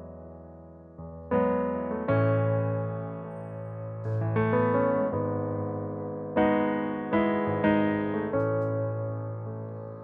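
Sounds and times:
piano playing slow chords: 0.0s - 10.0s.

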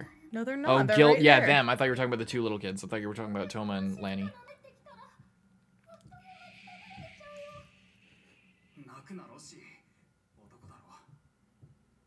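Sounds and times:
long hushing shh: 6.1s - 9.1s.

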